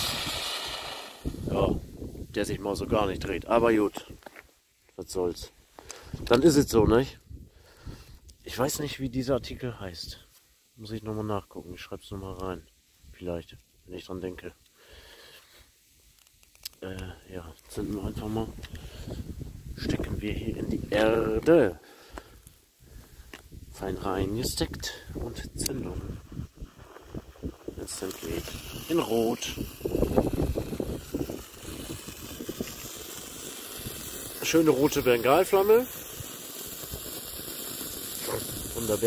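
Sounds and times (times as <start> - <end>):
flame hissing: 0.0 - 2.4, 14.6 - 39.0
wind rumbling on microphone: 0.0 - 3.5, 6.0 - 8.2, 17.8 - 21.6, 22.8 - 37.3
man talking: 1.4 - 4.1, 5.0 - 5.5, 8.4 - 10.2, 10.8 - 12.6, 13.2 - 14.6, 16.8 - 18.6, 19.8 - 21.8, 23.8 - 26.1, 27.8 - 29.6, 34.4 - 35.9, 38.2 - 39.0
handling noise on asphalt: 3.9 - 4.5.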